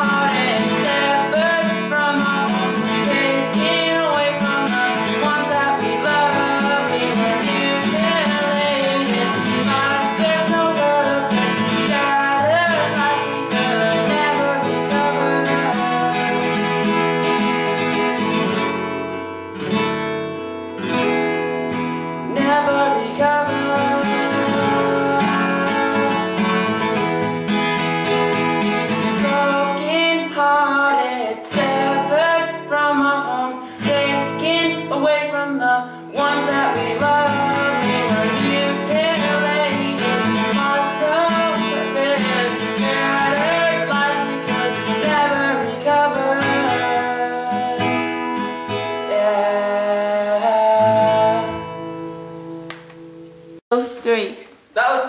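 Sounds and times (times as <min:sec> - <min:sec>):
young man singing: 0:00.0 - 0:17.9, 0:22.2 - 0:27.2, 0:28.4 - 0:51.8, 0:54.8 - 0:55.0
acoustic guitar strumming: 0:00.0 - 0:54.0.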